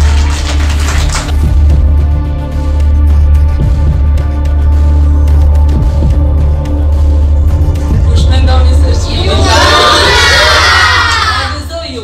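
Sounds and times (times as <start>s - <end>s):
children cheering and shouting: 9.3s - 11.6s.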